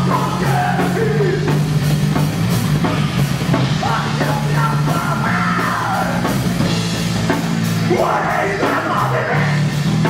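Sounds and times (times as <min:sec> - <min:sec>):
yelled vocal: 0:00.0 - 0:01.6, 0:03.7 - 0:06.4, 0:07.8 - 0:09.9.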